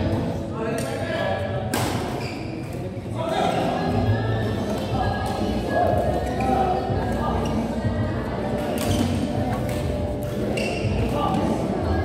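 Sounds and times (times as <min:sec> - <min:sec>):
hubbub of voices in hall: 0:00.0 - 0:12.0.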